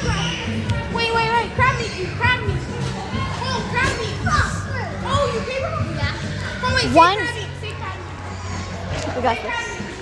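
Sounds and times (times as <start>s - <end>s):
children chattering and shouting: 0.0s - 10.0s.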